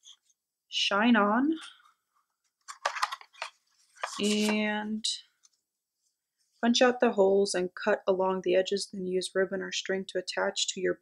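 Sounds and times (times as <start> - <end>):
paper packaging crinkling: 2.6 - 4.7.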